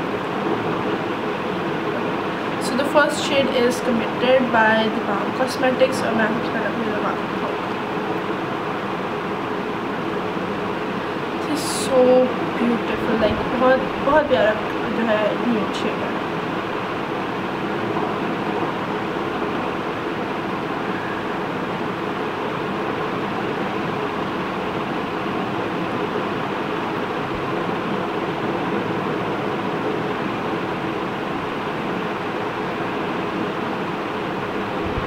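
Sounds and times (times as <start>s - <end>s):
mechanical hum and hiss: 0.0s - 35.0s.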